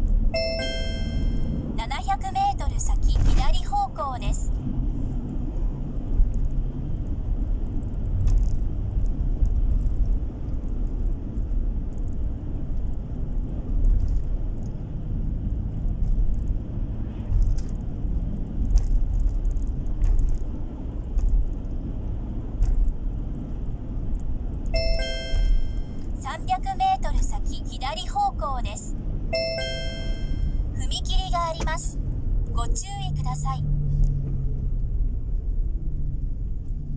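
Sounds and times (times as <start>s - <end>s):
car engine and road rumble: 0.0s - 36.9s
warbling electronic tones: 0.4s - 1.6s, 24.8s - 26.0s, 29.4s - 30.6s
electronic chime: 0.4s - 1.7s, 24.8s - 26.0s, 29.4s - 30.6s.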